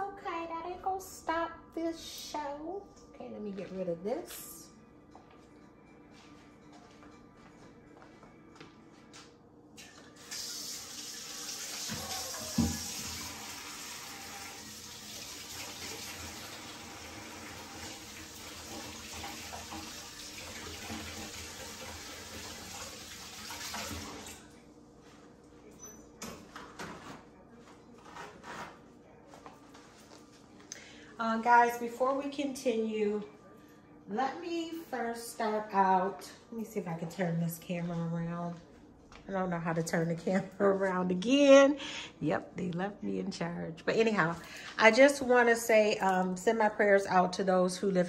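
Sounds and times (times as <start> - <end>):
faucet running into a sink: 9.8 - 24.4.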